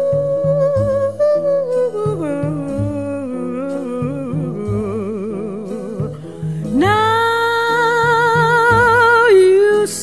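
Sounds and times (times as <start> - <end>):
wordless melody line: 0.0 - 10.0.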